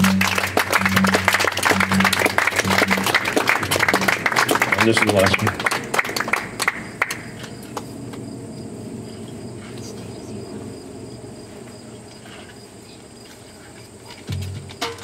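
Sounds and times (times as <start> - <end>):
low background hum: 0.0 - 14.8
high insect drone: 0.0 - 15.0.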